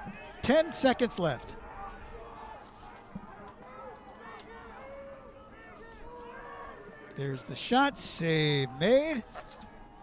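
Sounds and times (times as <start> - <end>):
players shouting on a field: 0.0 - 10.0
faint clicks: 2.6 - 4.8.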